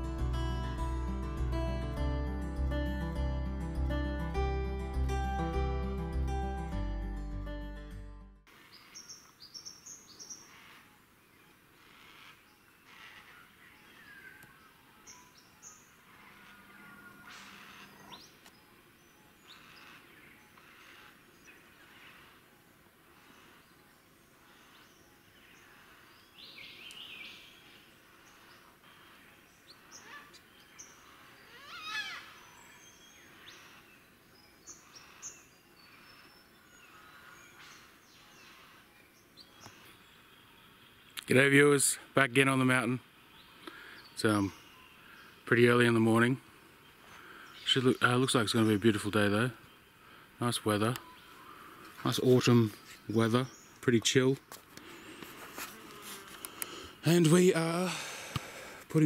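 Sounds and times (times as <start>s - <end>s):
birds chirping: 0.0s - 59.0s
outdoor bush ambience: 0.0s - 59.0s.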